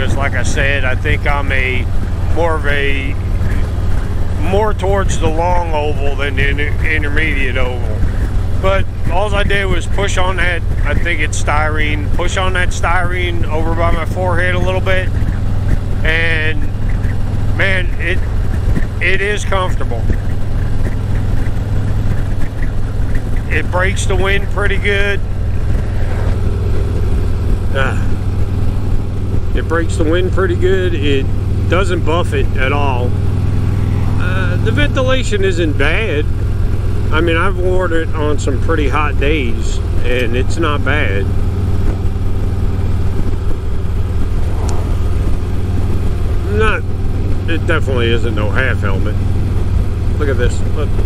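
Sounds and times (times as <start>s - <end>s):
wind noise: 0.0s - 30.2s, 39.5s - 48.4s
motorcycle engine running: 0.0s - 51.0s
road noise: 0.0s - 51.0s.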